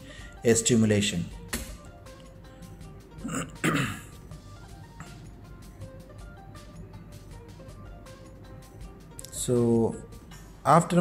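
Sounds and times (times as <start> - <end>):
background music: 0.0 - 11.0
person clearing throat: 3.2 - 4.2.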